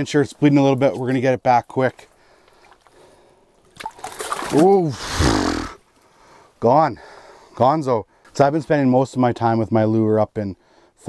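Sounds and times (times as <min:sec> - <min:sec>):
water sloshing: 0:00.6 - 0:05.0.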